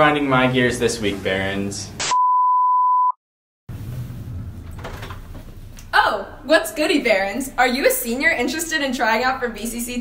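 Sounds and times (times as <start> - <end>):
high steady test tone beep: 2.1 - 3.2.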